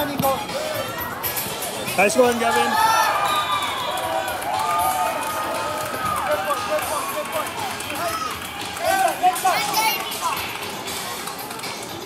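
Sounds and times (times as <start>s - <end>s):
many voices shouting: 2.3s - 10.3s.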